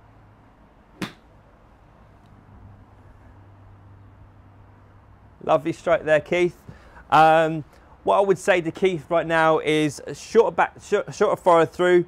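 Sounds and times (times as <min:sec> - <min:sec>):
golf club striking ball: 0:01.0 - 0:01.4.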